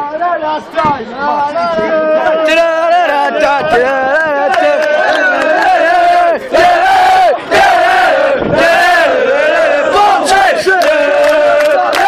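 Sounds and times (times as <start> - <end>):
boys chanting in unison: 0.8 - 12.0.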